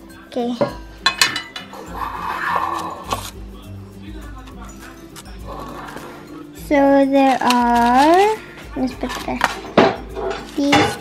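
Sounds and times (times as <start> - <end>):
background music: 0.0 - 11.0
metal tin lid clinking: 1.0 - 3.4, 7.2 - 11.0
papery rustle: 2.3 - 3.4, 7.2 - 9.7.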